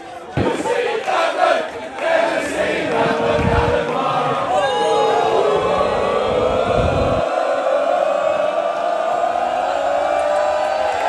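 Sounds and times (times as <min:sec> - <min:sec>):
crowd chanting and shouting: 0:00.0 - 0:11.0.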